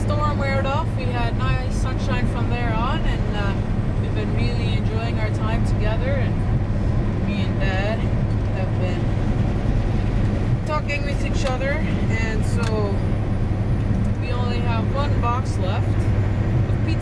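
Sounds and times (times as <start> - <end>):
road noise inside cab: 0.0 - 17.0
truck engine drone: 0.0 - 17.0
person talking: 10.7 - 13.0.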